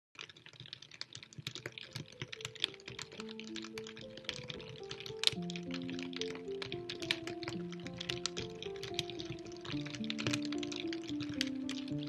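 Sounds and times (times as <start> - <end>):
rain pattering: 0.2 - 12.0
soft sustained music notes: 2.4 - 12.0.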